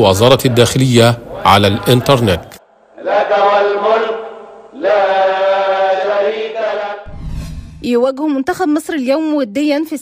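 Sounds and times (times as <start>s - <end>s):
rising whoosh: 7.0s - 8.0s
low rumble: 7.1s - 8.1s.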